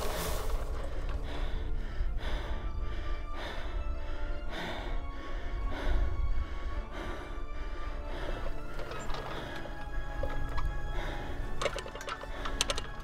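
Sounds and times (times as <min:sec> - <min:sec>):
background music with held tones: 0:00.0 - 0:13.0
sharp clicks: 0:08.6 - 0:13.0.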